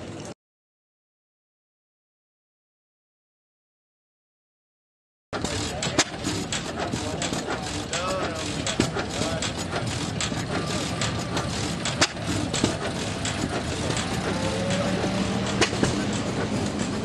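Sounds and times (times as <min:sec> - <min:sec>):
people talking: 0:05.4 - 0:17.0
jeep engine driving slowly: 0:06.2 - 0:17.0.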